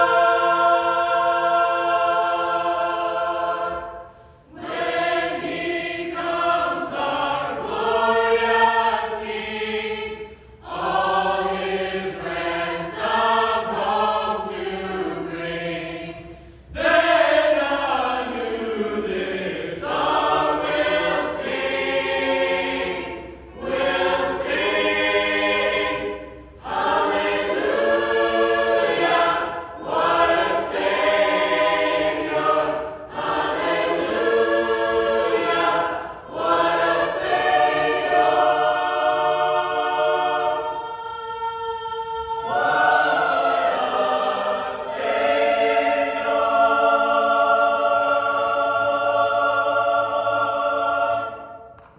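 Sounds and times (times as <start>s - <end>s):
mixed choir singing sacred music: 0.0s - 51.9s.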